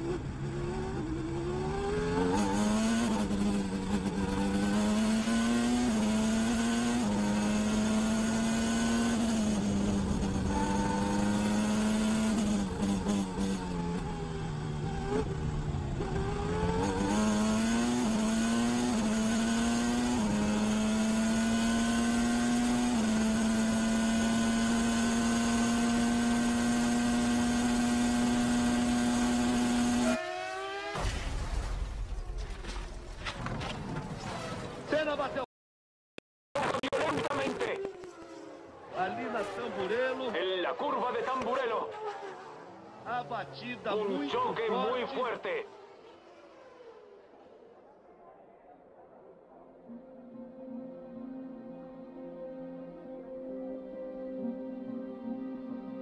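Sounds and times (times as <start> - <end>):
racing car engine: 0.0 - 31.0, 36.6 - 49.9.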